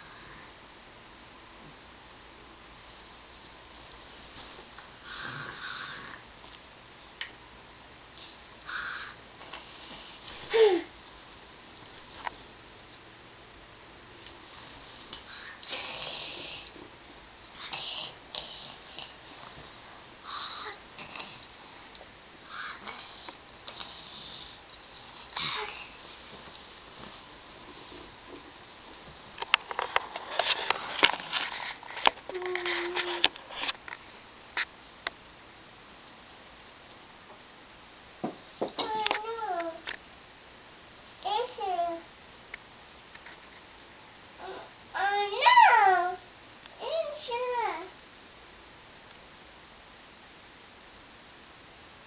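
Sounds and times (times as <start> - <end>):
child humming: 10.5 - 10.9, 32.3 - 33.3, 44.4 - 45.2
soft rustling: 24.7 - 34.0.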